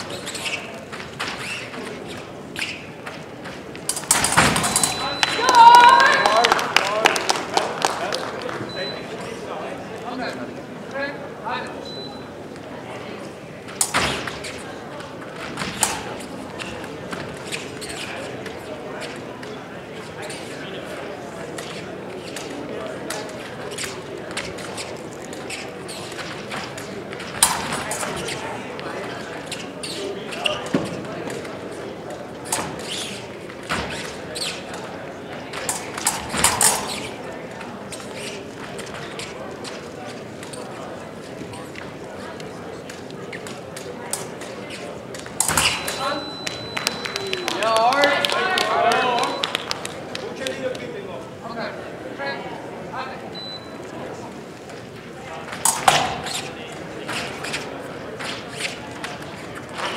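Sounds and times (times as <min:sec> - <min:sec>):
background voices in a hall: 0:00.0 - 0:59.9.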